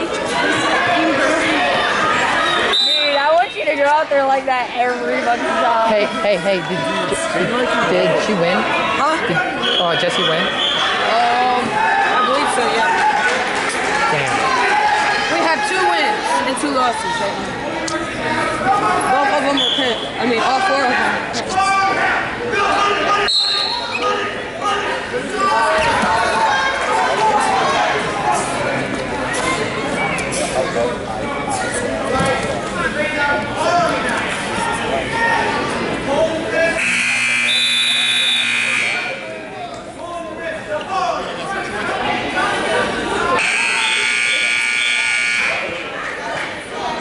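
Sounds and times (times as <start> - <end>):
people talking: 0.0 - 47.0
voices and chatter: 0.0 - 47.0
scoreboard buzzer: 36.8 - 39.2, 43.4 - 45.7.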